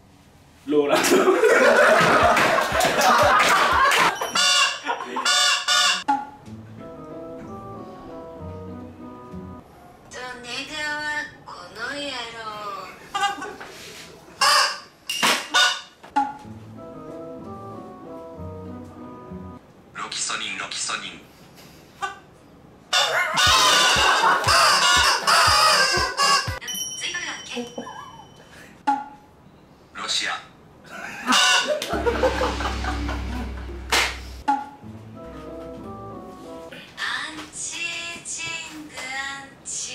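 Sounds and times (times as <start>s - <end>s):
party horns honking: 4.1s - 6.0s, 23.4s - 26.6s
novelty horn honking blasts: 31.9s - 34.4s
low steady hum: 31.9s - 36.7s.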